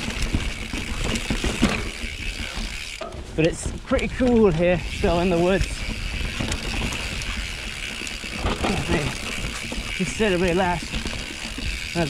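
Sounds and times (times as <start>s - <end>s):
bike rattles and clicks: 0.0s - 12.0s
bike tyre noise on dirt: 0.0s - 12.0s
freehub buzzing: 0.0s - 12.0s.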